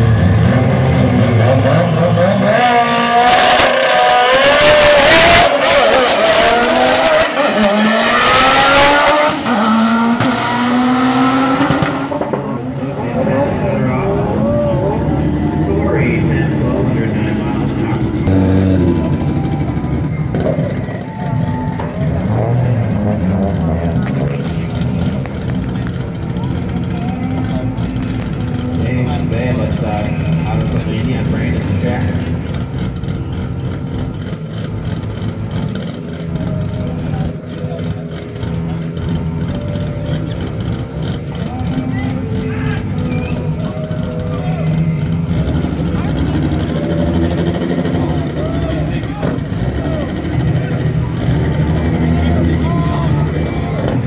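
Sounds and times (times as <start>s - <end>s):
drag car engines running: 0.0s - 54.0s
people talking: 12.3s - 32.5s, 36.4s - 38.7s, 39.4s - 54.0s.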